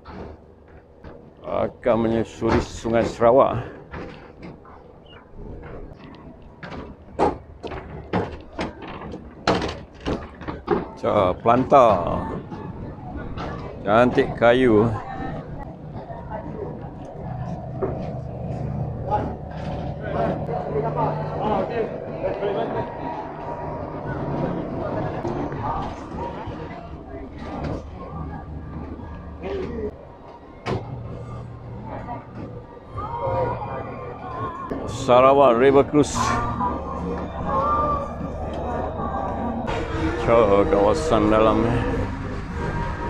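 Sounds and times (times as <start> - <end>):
boat engine hum: 0.0 - 43.0
people's voices: 1.4 - 6.9, 7.7 - 43.0.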